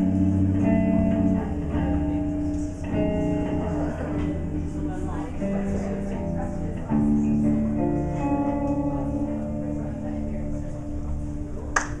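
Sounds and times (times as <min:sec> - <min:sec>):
electric guitar chord ringing: 0:00.0 - 0:12.0
low amplifier hum: 0:00.0 - 0:12.0.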